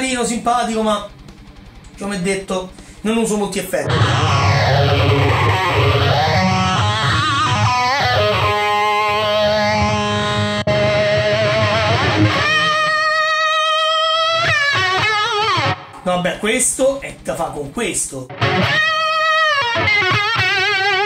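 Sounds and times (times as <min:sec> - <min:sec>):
electric guitar with modulation effect: 0:03.8 - 0:16.1, 0:18.3 - 0:21.0.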